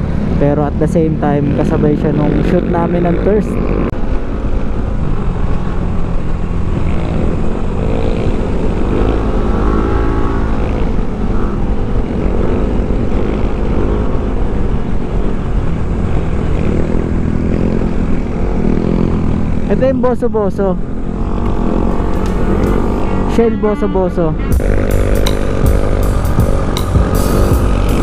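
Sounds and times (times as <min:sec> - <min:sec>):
motorcycle engine running: 0:00.0 - 0:28.0.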